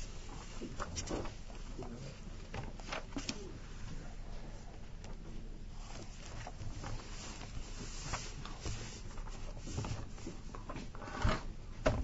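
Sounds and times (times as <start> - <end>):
background hiss: 0.0 - 11.9.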